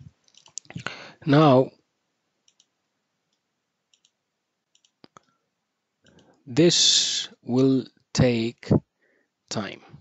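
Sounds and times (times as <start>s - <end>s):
faint short clicks: 3.3s - 5.3s.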